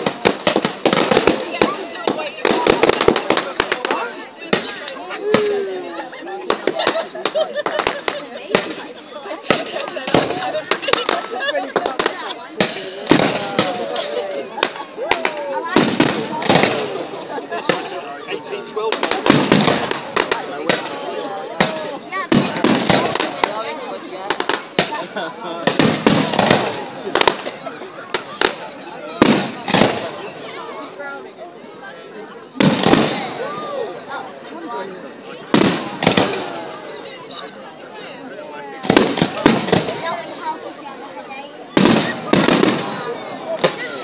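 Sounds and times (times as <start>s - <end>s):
fireworks bangs and crackles: 0.0s - 44.0s.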